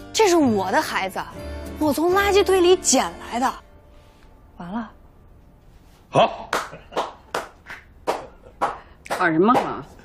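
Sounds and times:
person clapping hands slowly: 6.5 - 9.8.

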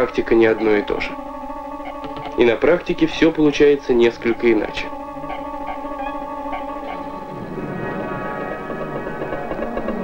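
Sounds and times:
sustained tones: 0.0 - 10.0
slow wavering melody: 4.2 - 10.0.

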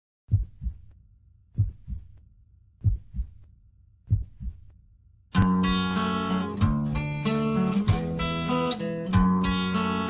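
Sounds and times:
heartbeat thumps: 0.3 - 4.9.

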